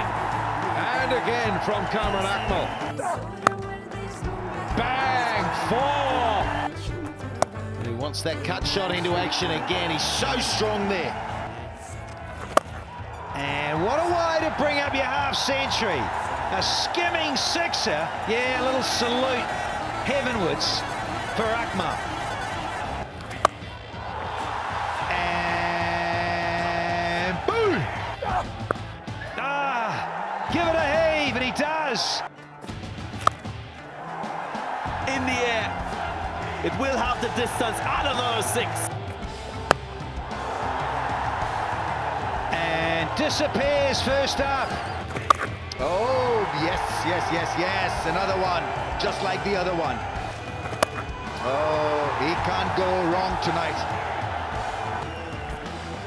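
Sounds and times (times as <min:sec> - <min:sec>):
background music: 0:00.0 - 0:56.0
stadium background noise: 0:00.0 - 0:56.0
cricket bat striking ball: 0:45.1 - 0:45.5, 0:50.6 - 0:51.1.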